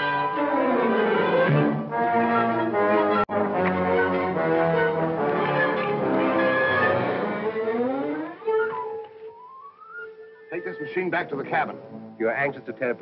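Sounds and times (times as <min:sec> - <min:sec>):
orchestral music with brass and strings: 0:00.0 - 0:09.2.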